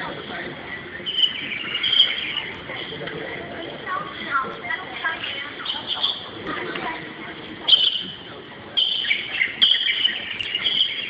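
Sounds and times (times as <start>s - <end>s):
faint background murmur: 0.0s - 11.0s
birds chirping: 1.0s - 2.9s, 7.7s - 11.0s.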